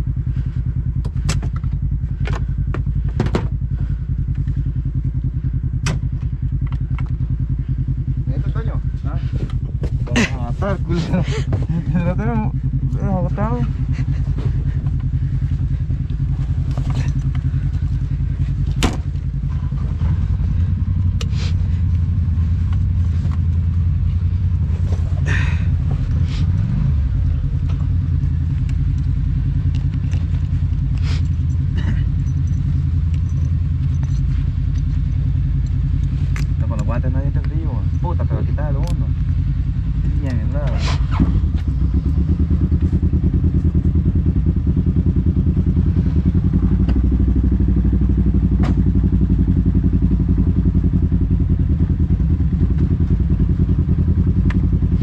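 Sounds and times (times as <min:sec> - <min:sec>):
vehicle engine idling and revving: 0:00.0 - 0:55.0.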